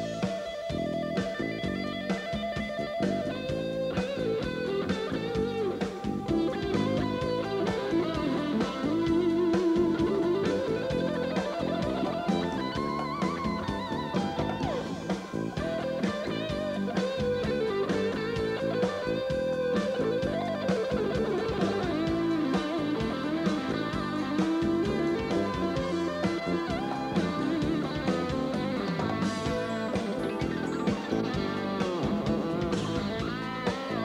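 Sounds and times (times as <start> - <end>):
drums: 0.0 - 34.0
electric guitar lead: 0.0 - 34.0.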